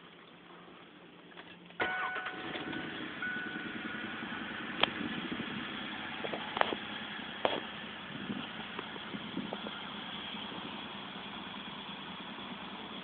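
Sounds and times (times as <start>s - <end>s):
pickup engine idling: 0.1s - 13.0s.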